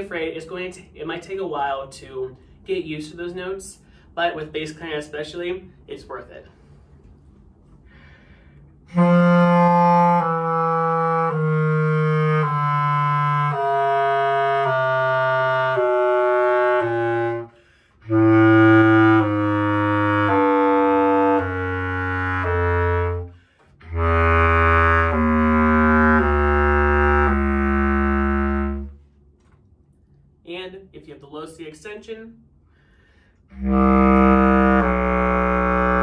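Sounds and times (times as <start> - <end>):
bass clarinet descending scale: 8.8 - 29.0, 33.5 - 36.0.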